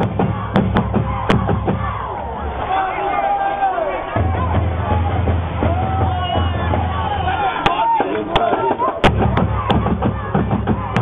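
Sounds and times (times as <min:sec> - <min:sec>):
people talking: 0:06.1 - 0:09.1.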